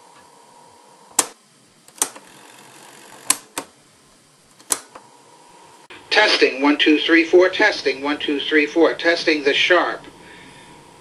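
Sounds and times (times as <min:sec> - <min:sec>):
low steady hiss: 0:00.0 - 0:11.0
cassette recorder buttons clicking: 0:01.1 - 0:02.2, 0:03.2 - 0:03.7, 0:04.5 - 0:05.0.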